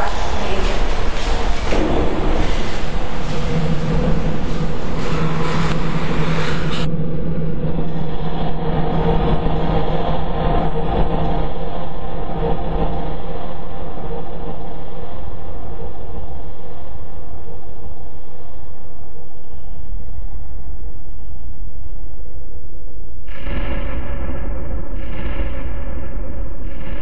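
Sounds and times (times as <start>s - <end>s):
loud steady rumbling: 0.0s - 15.0s
low hum: 0.0s - 22.8s.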